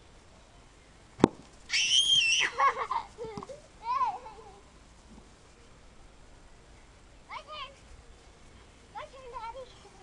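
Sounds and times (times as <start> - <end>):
child squealing: 1.7 - 2.7.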